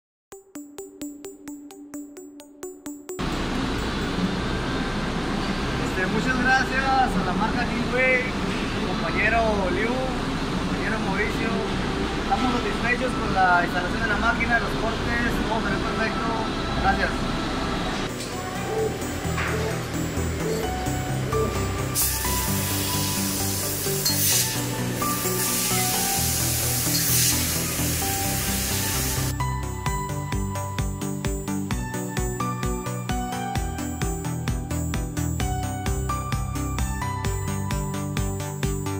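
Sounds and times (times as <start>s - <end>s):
background music: 0.3s - 8.3s, 9.0s - 38.9s
workshop noise: 3.2s - 29.4s
laser cutting metal tube hiss: 21.9s - 29.3s.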